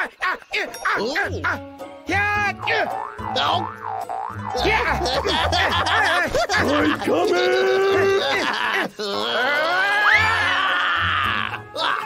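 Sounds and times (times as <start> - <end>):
background music: 0.0 - 12.0
cartoon boing sounds: 2.6 - 5.4.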